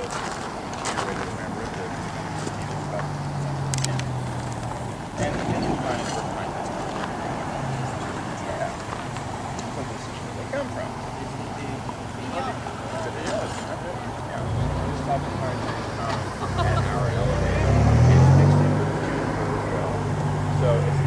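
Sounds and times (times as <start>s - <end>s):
faint voices talking: 0.0s - 21.0s
vehicle engine humming: 0.0s - 21.0s.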